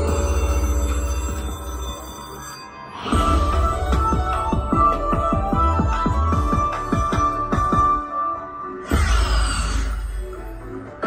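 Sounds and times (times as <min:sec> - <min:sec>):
slot machine win sound: 0:00.0 - 0:07.5.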